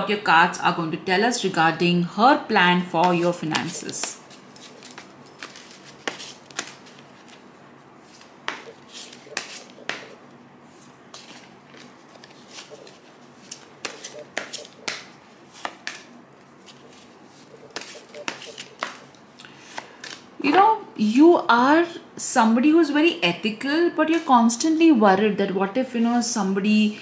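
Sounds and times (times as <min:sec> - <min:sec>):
cards being shuffled: 0:03.0 - 0:20.3.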